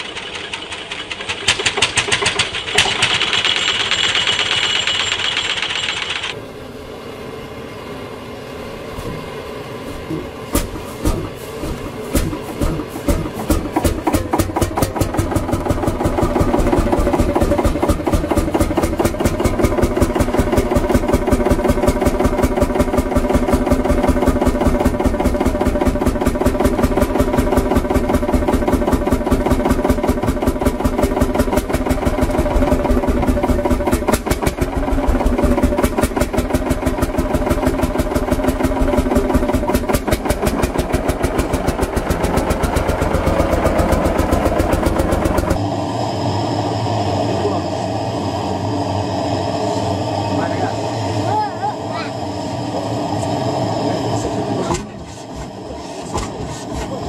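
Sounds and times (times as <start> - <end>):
tractor engine running: 0.0 - 6.4, 8.9 - 51.1.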